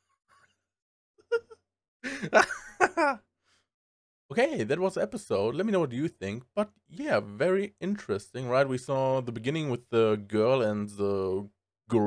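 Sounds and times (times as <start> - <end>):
man laughing: 1.3 - 3.2.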